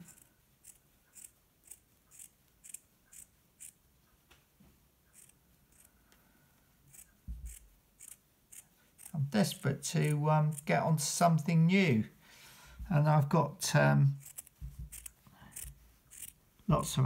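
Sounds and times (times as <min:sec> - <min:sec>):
scissors snipping yarn: 0:14.2 - 0:16.4.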